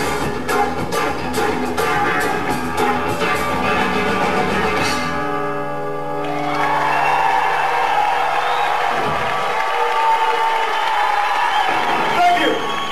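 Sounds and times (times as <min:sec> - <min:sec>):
live rock band playing: 0:00.0 - 0:07.0
crowd cheering and applauding: 0:06.2 - 0:12.9.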